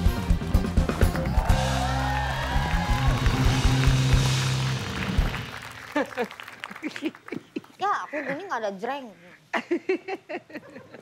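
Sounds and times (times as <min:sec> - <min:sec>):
band music with drum beat: 0:00.0 - 0:05.5
bass guitar: 0:00.0 - 0:05.5.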